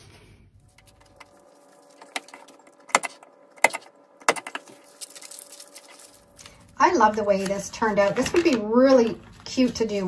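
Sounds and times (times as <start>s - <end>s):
paper being handled: 0.0s - 10.0s.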